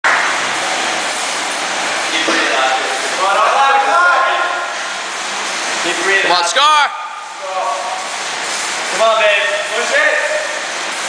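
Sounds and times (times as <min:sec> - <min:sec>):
exercise bike fan whooshing: 0:00.1 - 0:11.0.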